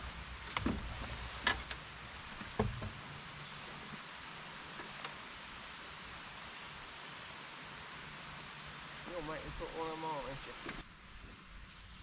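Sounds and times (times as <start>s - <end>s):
outdoor ambience hiss: 0.0s - 12.0s.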